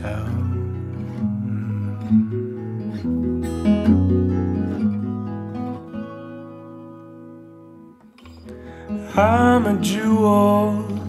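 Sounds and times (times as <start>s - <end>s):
acoustic guitar plucking: 0.0s - 11.0s.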